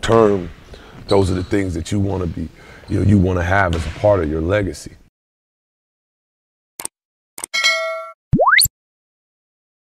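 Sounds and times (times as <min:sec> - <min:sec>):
bright metallic ding: 0:07.6 - 0:08.2.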